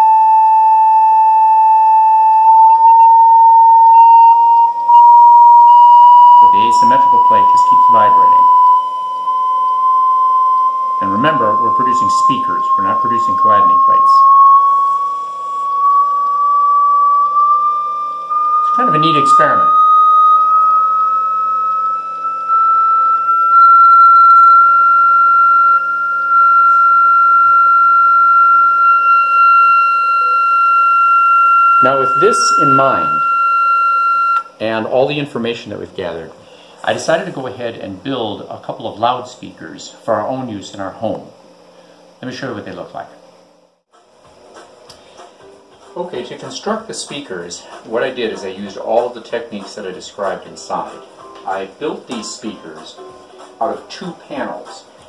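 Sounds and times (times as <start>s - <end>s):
rising sine tone sweep: 0.0s - 34.6s.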